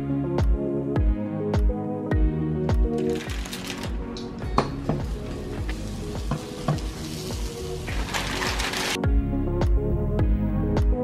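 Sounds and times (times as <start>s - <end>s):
background music with steady beat: 0.0s - 11.0s
patty sizzling in a frying pan: 4.7s - 9.0s.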